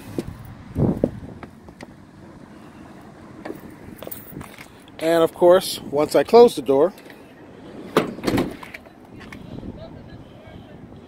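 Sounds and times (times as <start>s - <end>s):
sliding door clunk: 7.7s - 8.8s.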